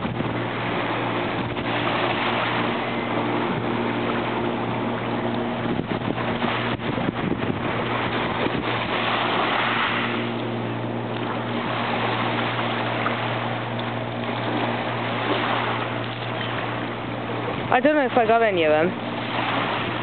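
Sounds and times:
river water rushing: 0:00.0 - 0:06.8, 0:07.6 - 0:20.0
low hum: 0:00.0 - 0:20.0
wind on microphone: 0:00.0 - 0:20.0.

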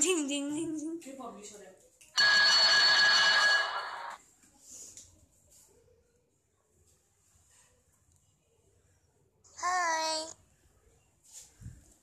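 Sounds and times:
electric school bell ringing: 0:02.2 - 0:04.2.

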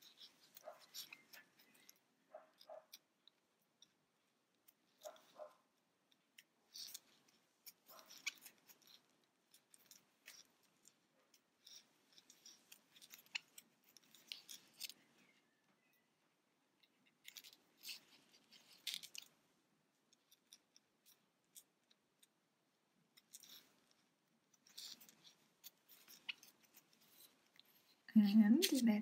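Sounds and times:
crochet hook clicking on yarn: 0:24.6 - 0:29.0.

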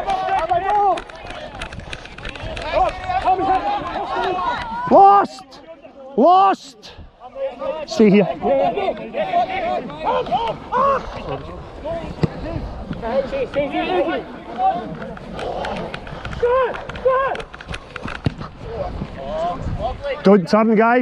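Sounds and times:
players shouting: 0:02.3 - 0:12.4.

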